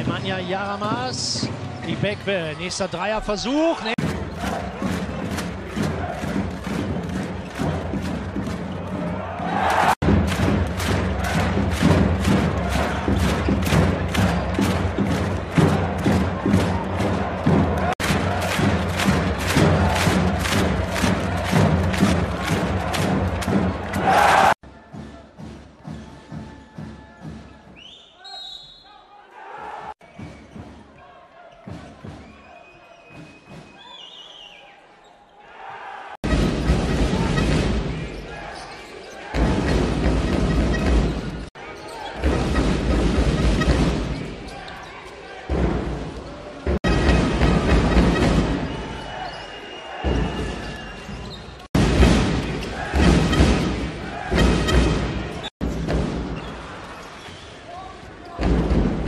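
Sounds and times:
drums: 0.0 - 2.4, 3.9 - 27.9, 29.9 - 34.1, 36.1 - 38.5, 39.2 - 44.8, 45.5 - 57.0, 58.3 - 59.0
crowd chanting: 3.9 - 10.1, 10.8 - 13.8, 14.4 - 24.6, 41.5 - 55.5.

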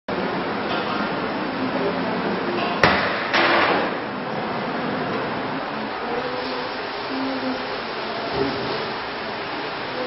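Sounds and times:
machine or ventilation noise: 0.1 - 10.0.

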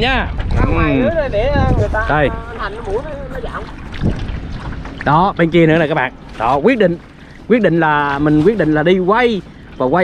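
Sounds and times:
wind on microphone: 0.0 - 10.0
oar stroking water: 2.4 - 10.0.

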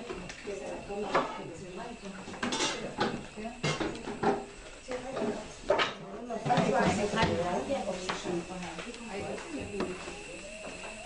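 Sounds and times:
people talking indistinctly: 0.0 - 10.5.

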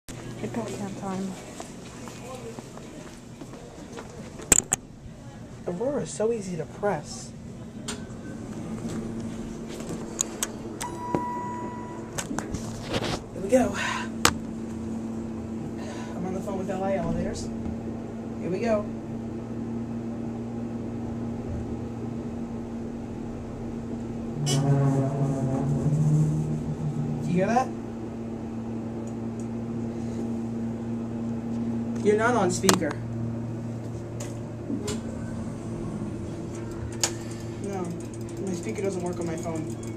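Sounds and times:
elevator hum: 0.1 - 39.9
light footsteps: 0.4 - 4.5
steady tones: 8.1 - 39.9.

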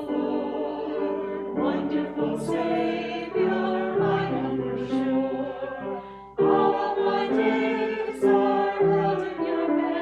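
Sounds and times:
choir singing a worship song: 0.0 - 10.0
piano accompaniment: 0.0 - 10.0.

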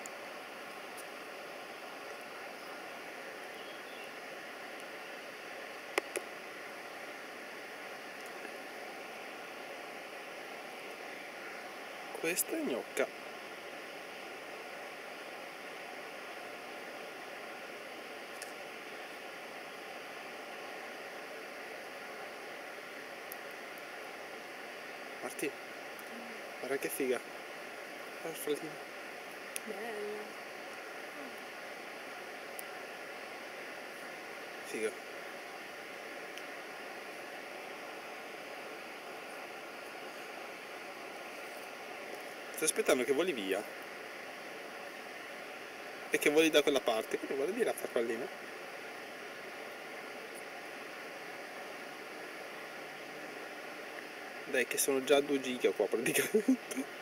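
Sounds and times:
faint steady tones: 0.0 - 57.0
steady background hiss: 0.0 - 57.0
faint click: 18.3 - 18.6.

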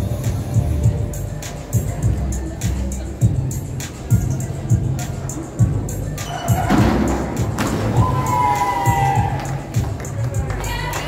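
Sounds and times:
background music with thumping beat: 0.0 - 11.0.

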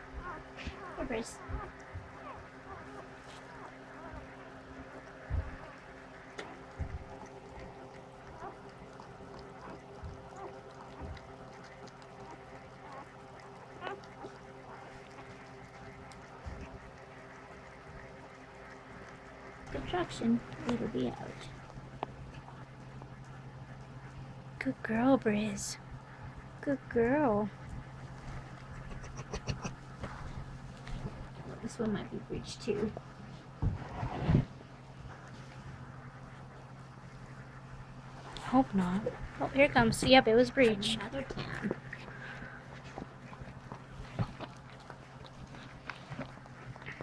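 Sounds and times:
faint steady hum: 0.0 - 47.0
dog licking wetly: 0.2 - 24.4.

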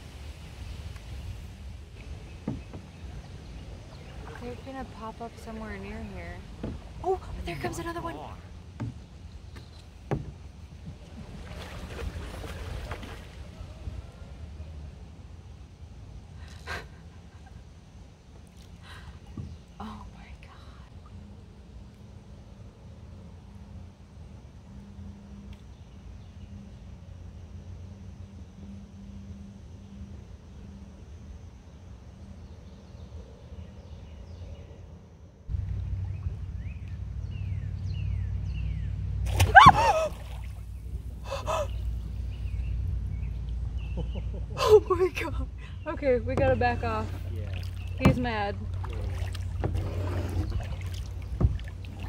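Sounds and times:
low steady rumble: 0.0 - 52.0.

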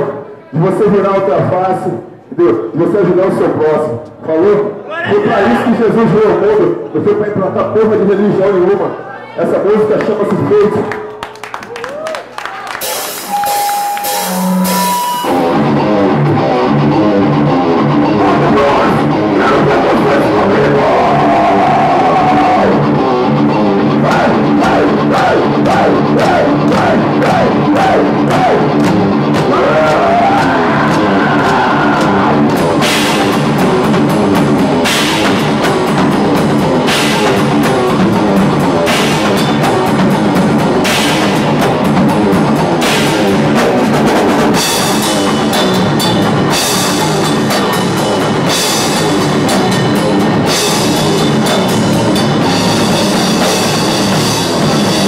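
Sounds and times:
drum kit: 12.7 - 55.0
distorted electric guitar: 12.8 - 55.0
cymbal crashes: 13.0 - 15.8.

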